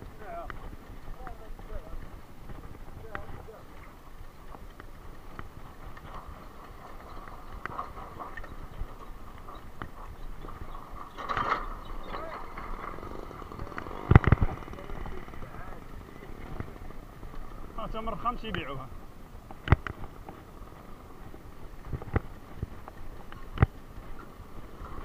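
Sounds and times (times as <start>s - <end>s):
horse hooves: 0.0s - 25.0s
background voices: 10.5s - 19.0s.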